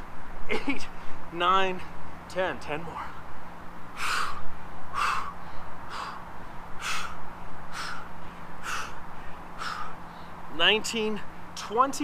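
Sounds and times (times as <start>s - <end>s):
man exhaling forcefully: 4.0s - 10.0s.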